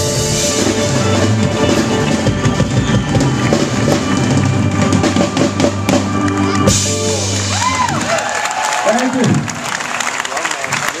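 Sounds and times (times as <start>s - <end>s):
audience applauding: 1.2s - 11.0s.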